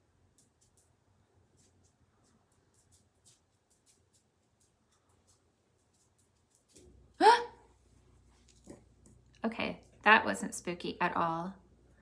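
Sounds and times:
woman's startled yelp: 0:07.2 - 0:07.6.

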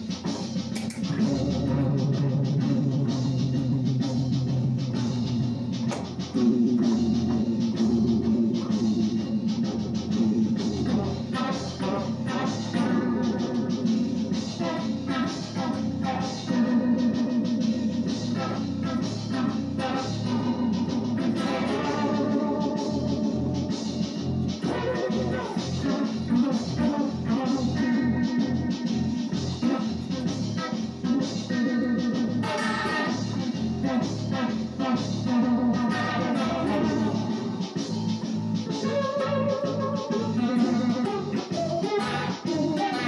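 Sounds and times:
electric guitar chords: 0:00.0 - 0:43.0
repeating low bass pattern: 0:00.0 - 0:43.0.

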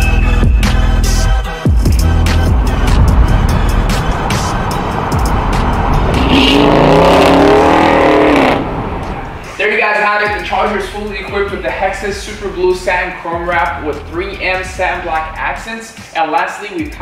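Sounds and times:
background music: 0:00.0 - 0:17.0
car engine accelerating past: 0:02.0 - 0:09.6.

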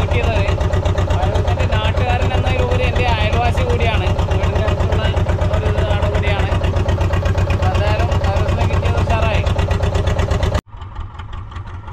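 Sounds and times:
voices talking: 0:00.0 - 0:09.8
boat engine running: 0:00.0 - 0:11.9
quiet engine hum: 0:00.0 - 0:11.9.

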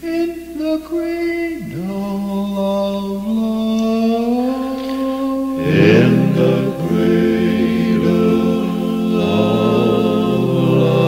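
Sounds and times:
a cappella quartet singing: 0:01.7 - 0:11.0.

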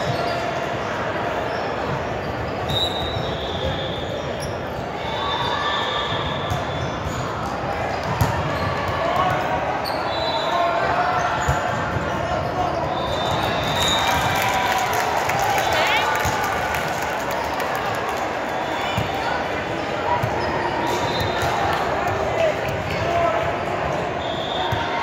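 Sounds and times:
sneakers squeaking: 0:00.0 - 0:14.4, 0:18.8 - 0:22.2
voices echoing in a hall: 0:00.0 - 0:25.0.

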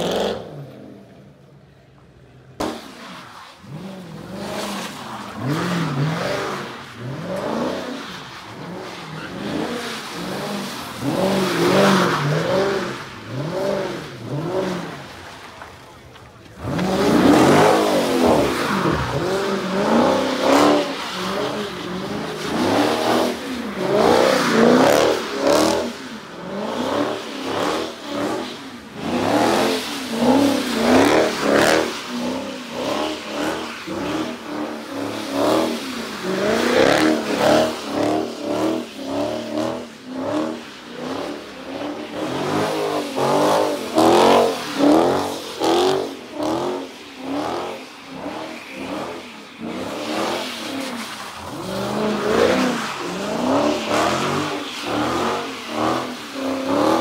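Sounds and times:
car engine revving: 0:00.0 - 0:01.2, 0:15.6 - 0:57.0.

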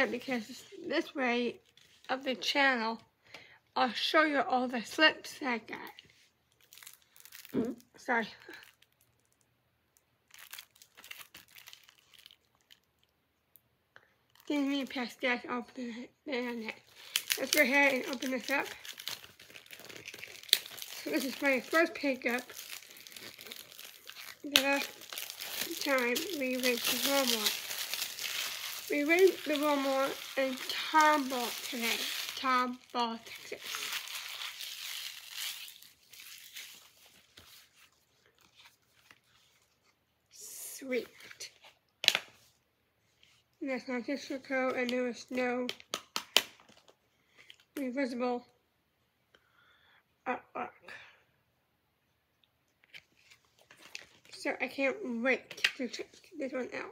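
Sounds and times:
plastic wrap crinkling: 0:05.8 - 0:09.5, 0:10.2 - 0:13.1, 0:16.4 - 0:40.0, 0:52.8 - 0:54.4.

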